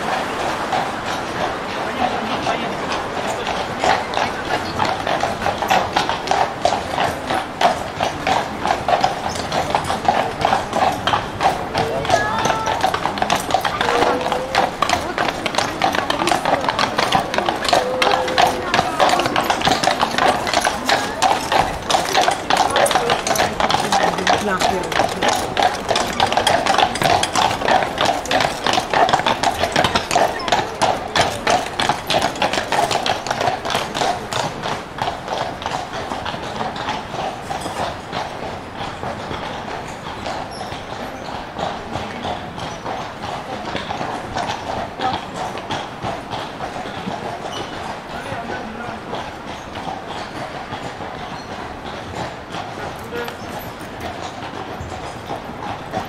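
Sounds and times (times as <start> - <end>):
horse hooves on cobblestones: 0.0 - 56.0
people talking faintly: 0.6 - 37.3.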